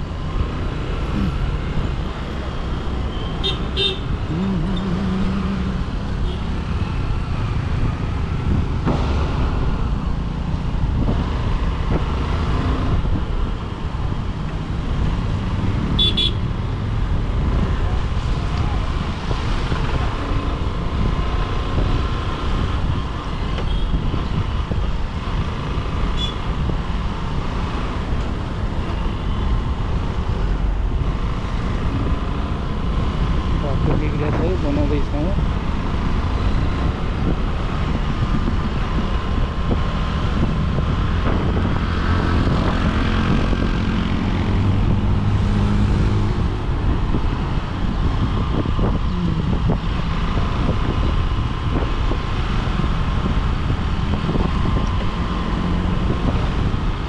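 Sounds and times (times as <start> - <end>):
motorcycle engine and wind rumble: 0.0 - 57.0
traffic noise: 0.0 - 57.0.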